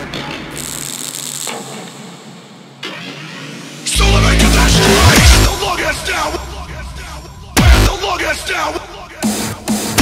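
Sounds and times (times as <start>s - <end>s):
noisy electronic sampled effects: 0.6s - 8.3s
deep bass: 3.9s - 8.2s.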